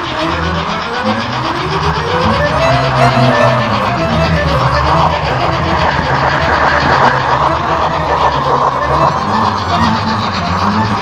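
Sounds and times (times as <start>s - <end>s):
low motor hum: 0.0s - 11.0s
model train wheels rattling on rails: 0.0s - 11.0s.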